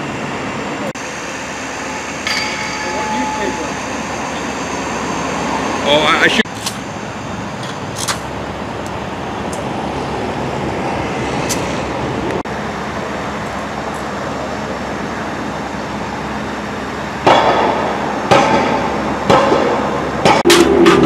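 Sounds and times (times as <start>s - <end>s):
steady mechanical rumble: 0.0s - 21.0s.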